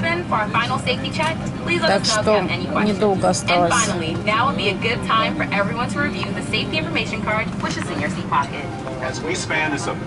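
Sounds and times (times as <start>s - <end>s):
airliner cabin hum: 0.0s - 10.0s
voices talking: 0.3s - 8.5s.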